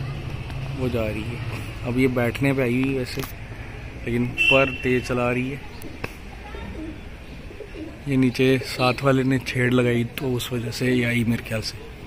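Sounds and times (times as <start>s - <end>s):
pigeons cooing: 5.6s - 9.4s.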